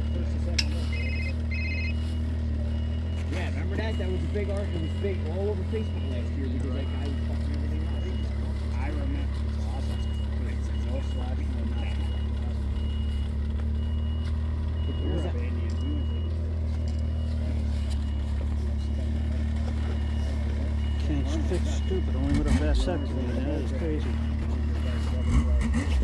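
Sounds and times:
faint high-pitched beep: 0:00.0 - 0:09.1, 0:09.7 - 0:25.5
engine idling: 0:00.0 - 0:26.0
faint voices: 0:00.0 - 0:26.0.

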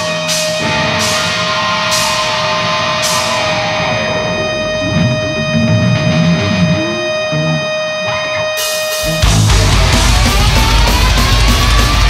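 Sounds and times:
cymbal crashes: 0:00.0 - 0:05.6
distorted electric guitar: 0:00.0 - 0:12.0.

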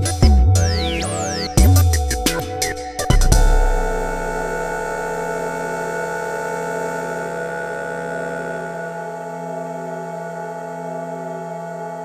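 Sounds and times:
modular synthesizer sustained chord: 0:00.6 - 0:12.0.

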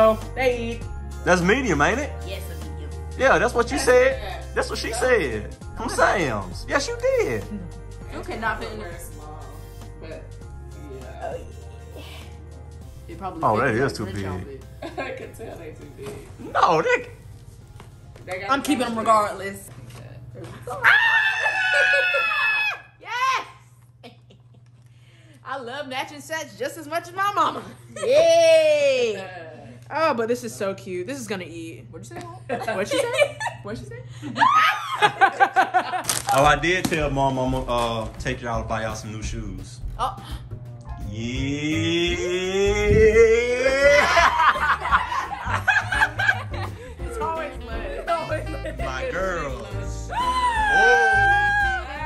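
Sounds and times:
background music: 0:00.0 - 0:23.5, 0:32.4 - 0:52.0
woman squealing with excitement: 0:20.7 - 0:23.6, 0:34.4 - 0:35.2, 0:50.1 - 0:52.0
young women laughing: 0:21.0 - 0:22.9, 0:32.5 - 0:36.1, 0:43.6 - 0:47.1.

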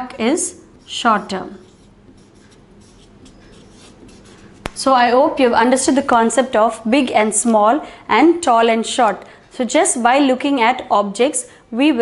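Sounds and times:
marker pen writing on paper: 0:00.8 - 0:04.7.

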